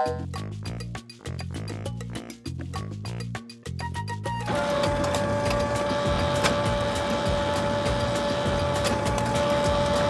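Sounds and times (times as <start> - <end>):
photocopier whirring: 4.5 - 10.0.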